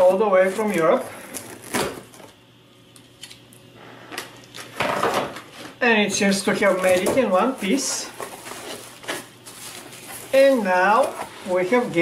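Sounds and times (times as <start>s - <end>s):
scissors slitting packing tape: 3.2s - 3.4s.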